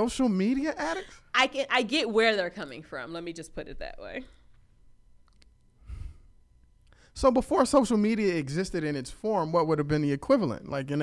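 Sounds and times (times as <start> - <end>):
person exhaling into microphone: 5.8 - 6.3.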